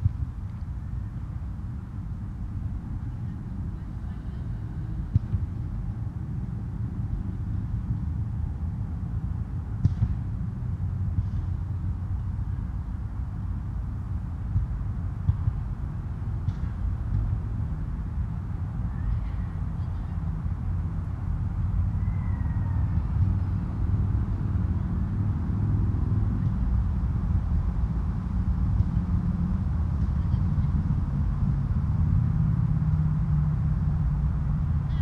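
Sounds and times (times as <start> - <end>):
steady low rumble: 0.0 - 35.0.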